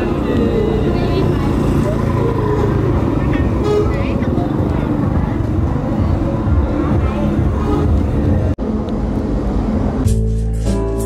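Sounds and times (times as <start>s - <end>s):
motorbike engine passing by: 0.0s - 5.0s
voices: 0.0s - 9.0s
street noise: 0.0s - 11.0s.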